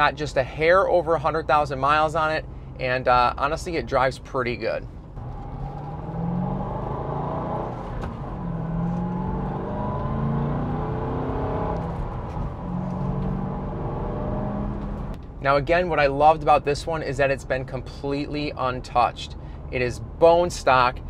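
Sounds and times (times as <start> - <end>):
car engine from inside cabin: 4.9 - 15.4.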